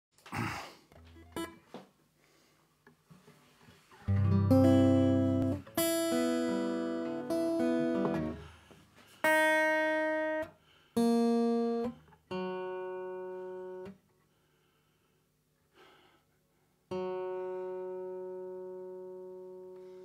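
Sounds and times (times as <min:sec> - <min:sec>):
guitar strings plucked: 0:04.0 - 0:08.5, 0:09.3 - 0:14.0
acoustic guitar chords strummed: 0:04.0 - 0:08.7, 0:09.3 - 0:14.0.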